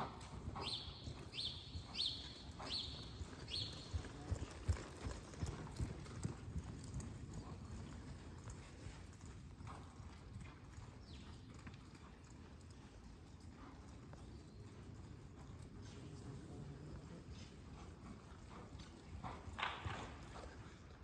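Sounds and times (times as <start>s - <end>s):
horse hoofbeats on dirt: 0.0s - 21.0s.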